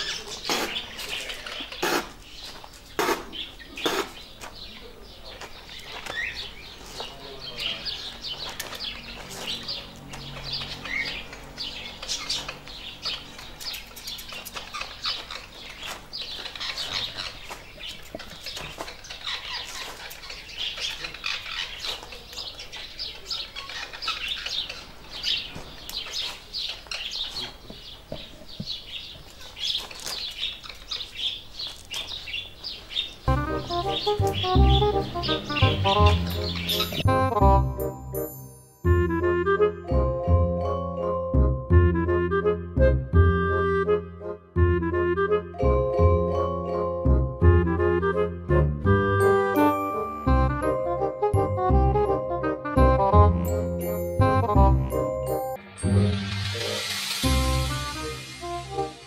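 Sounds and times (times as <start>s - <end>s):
small birds chirping: 0.0s - 38.7s
loud music: 33.3s - 38.2s, 47.1s - 59.0s.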